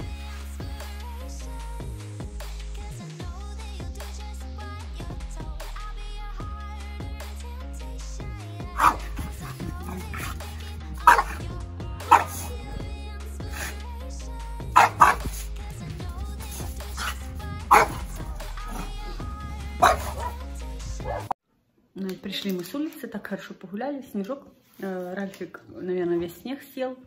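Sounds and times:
background music: 0:00.0 - 0:21.4
dog barking: 0:08.8 - 0:12.7, 0:13.5 - 0:13.8, 0:14.7 - 0:15.5, 0:16.4 - 0:19.2, 0:19.8 - 0:21.4.

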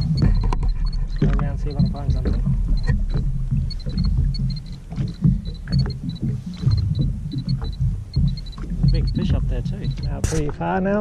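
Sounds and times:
jet ski engine idling: 0:00.0 - 0:10.2
water slapping against hull: 0:00.0 - 0:10.7.

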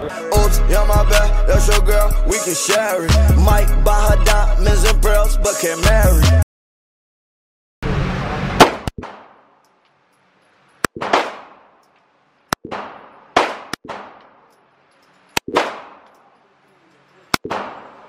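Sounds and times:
pistol shots ringing indoors: 0:15.5 - 0:16.2.

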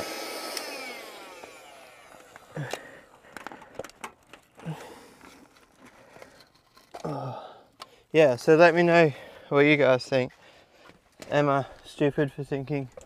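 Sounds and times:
pump motor winding down whine: 0:00.0 - 0:03.0
clicks and knocks handling pump: 0:01.4 - 0:07.1.

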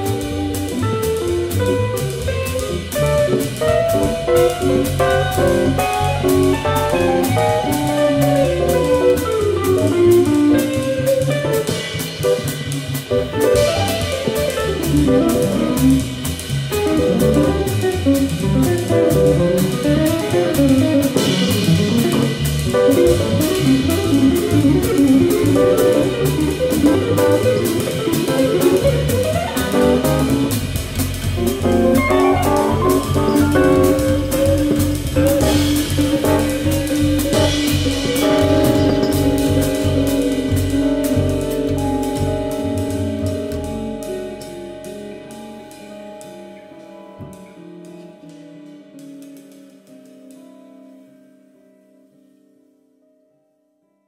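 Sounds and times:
bass: 0:00.0 - 0:49.2
drum kit: 0:00.0 - 0:50.6
jazz guitar lines: 0:00.0 - 0:52.6.

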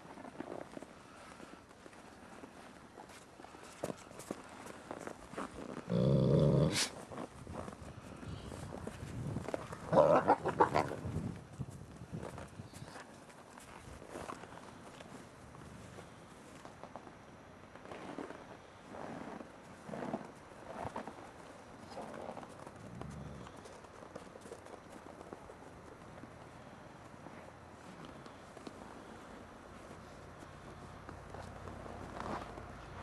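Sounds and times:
wolves growling and snarling: 0:05.8 - 0:07.0, 0:09.5 - 0:11.2, 0:22.8 - 0:23.8.

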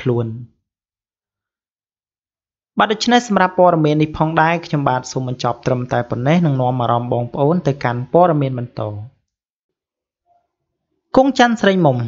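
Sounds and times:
person narrating: 0:00.0 - 0:00.5, 0:02.8 - 0:09.1, 0:11.2 - 0:12.0.

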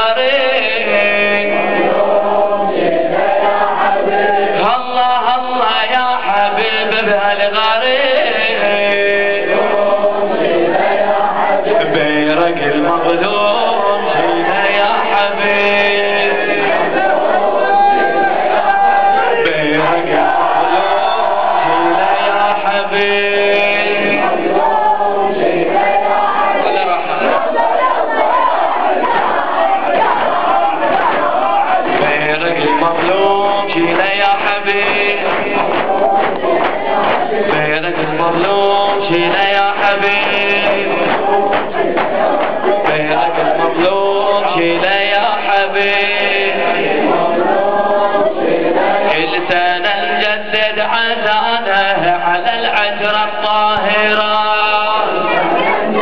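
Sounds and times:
men chanting in unison: 0:00.0 - 0:56.0
sharp slaps beating: 0:33.0 - 0:43.6.

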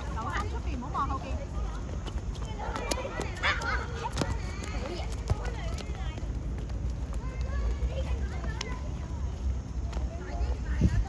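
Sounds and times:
running footsteps: 0:00.0 - 0:11.0.

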